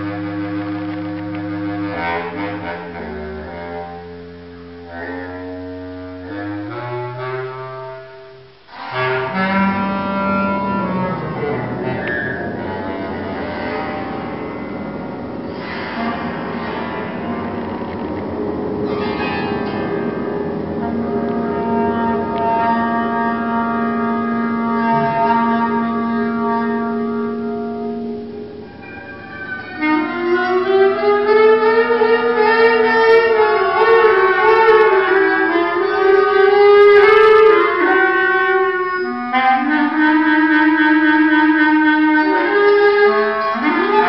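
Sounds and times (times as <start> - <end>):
improvised clarinet and piano music: 0.0 - 44.0
brief high pitch: 24.8 - 25.9.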